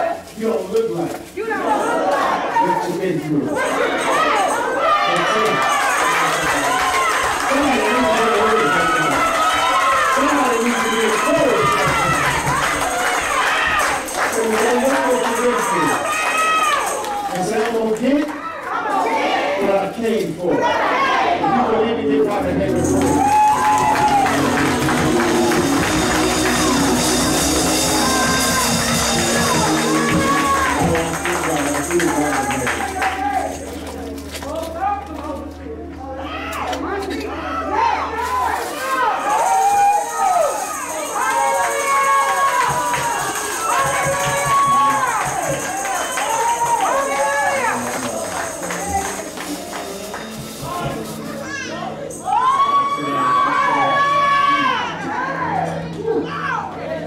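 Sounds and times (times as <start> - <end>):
drumming: 5.6 - 17.1, 22.7 - 34.0, 39.2 - 51.4
voices singing praise music: 20.5 - 33.6
keyboard chords: 21.4 - 57.0
tambourine: 22.8 - 33.8, 39.2 - 51.4.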